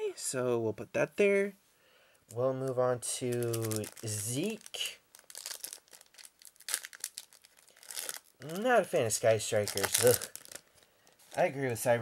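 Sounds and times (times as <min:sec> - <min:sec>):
foil wrapper crinkling and tearing: 0:02.7 - 0:11.6.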